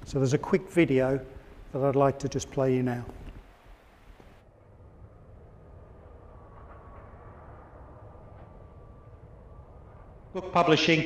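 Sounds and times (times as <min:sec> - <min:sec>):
faint low rumble: 0:00.0 - 0:11.0.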